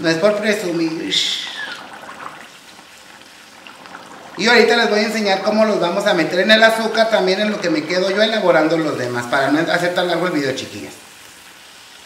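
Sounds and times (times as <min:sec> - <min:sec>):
batter sizzling in hot oil: 0:00.0 - 0:12.0.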